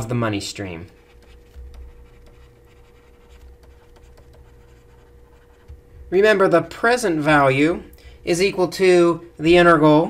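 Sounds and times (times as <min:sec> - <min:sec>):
low electrical hum: 0:00.0 - 0:10.0
stylus tapping and scratching screen: 0:00.8 - 0:06.7.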